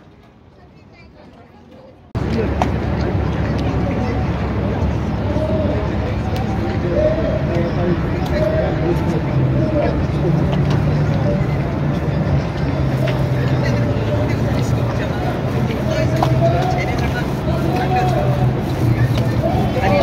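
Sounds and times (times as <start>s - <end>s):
indistinct crowd voices: 0.0s - 20.0s
motorboat engines droning: 2.2s - 20.0s.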